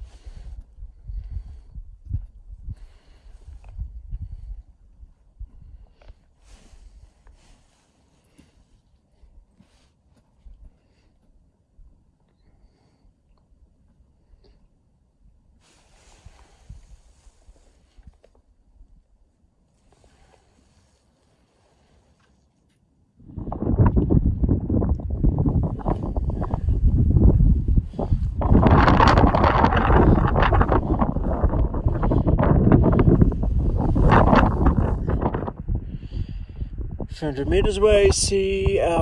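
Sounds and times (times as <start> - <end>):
wind buffeting microphone: 0.0 - 7.5, 23.2 - 39.0.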